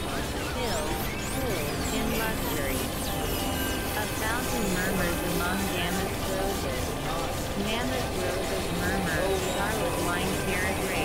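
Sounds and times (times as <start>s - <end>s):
swooping synthesizer tones: 0.0s - 11.0s.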